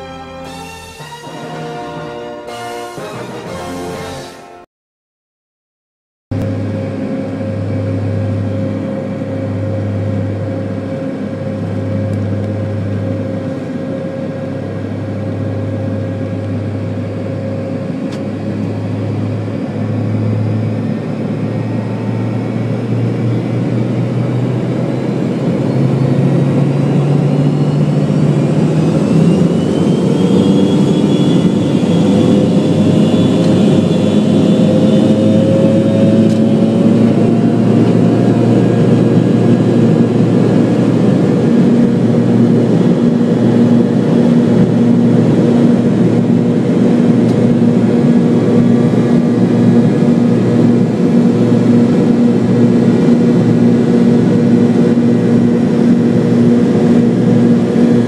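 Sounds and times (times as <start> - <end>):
jet engines spooling up: 6.4 - 58.0.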